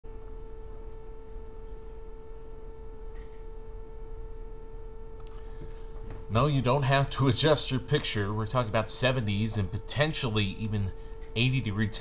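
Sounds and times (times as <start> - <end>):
low background hum: 0.1 - 12.0
steady electronic tone: 0.1 - 12.0.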